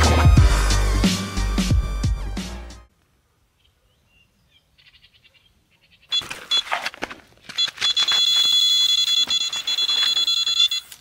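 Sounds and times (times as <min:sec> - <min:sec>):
bite alarm beeping: 0:06.1 - 0:06.9, 0:07.5 - 0:11.0
rustling noise: 0:06.1 - 0:11.0
continuous high-pitched alarm tone: 0:07.6 - 0:11.0.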